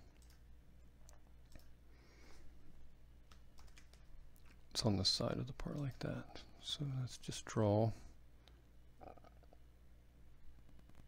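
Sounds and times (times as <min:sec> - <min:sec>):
computer mouse clicks: 0:00.1 - 0:00.4, 0:01.0 - 0:01.7, 0:03.3 - 0:04.1.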